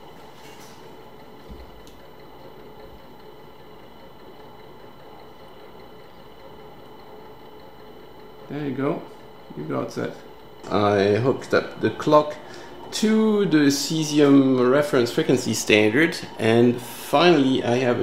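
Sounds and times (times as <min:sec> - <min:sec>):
electronic equipment hum: 0:00.0 - 0:18.0
faint steady whines: 0:00.0 - 0:18.0.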